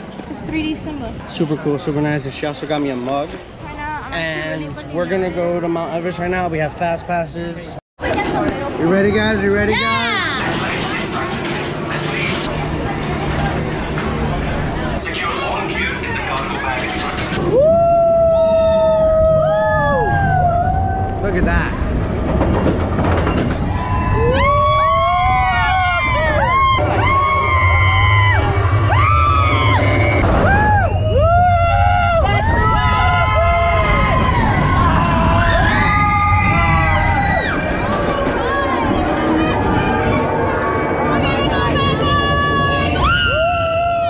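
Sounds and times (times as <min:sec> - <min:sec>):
wind: 0:00.0 - 0:44.0
low rumble: 0:10.4 - 0:44.0
riders screaming and whooping: 0:17.4 - 0:21.2, 0:23.6 - 0:40.7, 0:41.4 - 0:44.0.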